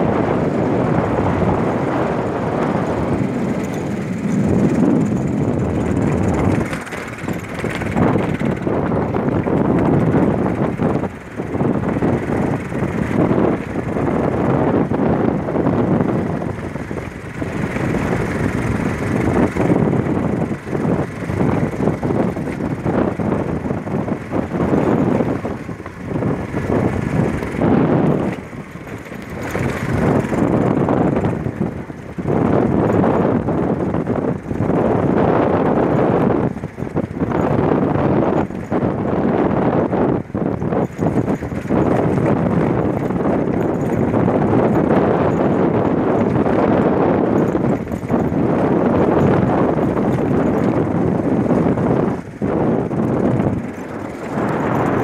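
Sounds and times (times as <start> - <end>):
vehicle engine and road noise: 0.0 - 55.0
vehicle jolts and rattles: 0.0 - 55.0.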